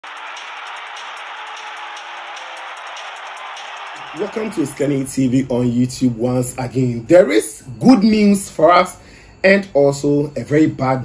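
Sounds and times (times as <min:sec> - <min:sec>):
crowd-like noise: 0:00.0 - 0:06.3
intro music: 0:00.0 - 0:09.0.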